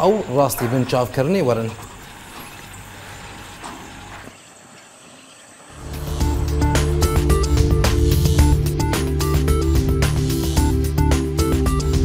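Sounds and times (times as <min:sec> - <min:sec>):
pumpjack running: 0:00.0 - 0:09.3.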